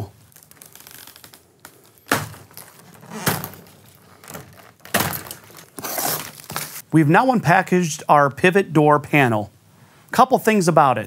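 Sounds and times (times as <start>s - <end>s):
plastic wrap and tape ripping: 0.0s - 6.8s.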